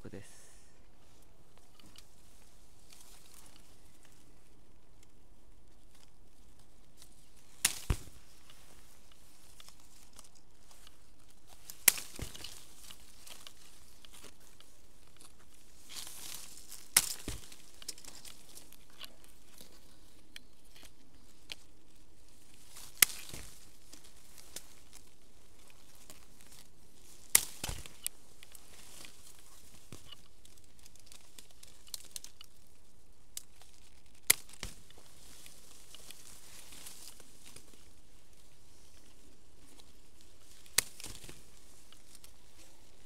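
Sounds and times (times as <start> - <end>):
leaves and branches rustling: 0.0 - 43.0
shears snipping stems: 7.0 - 21.6, 22.8 - 32.6, 33.3 - 37.9, 39.7 - 43.0.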